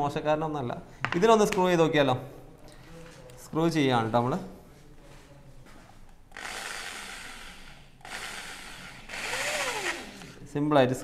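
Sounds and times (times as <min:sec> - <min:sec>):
electric drill driving a screw: 0:06.3 - 0:10.4.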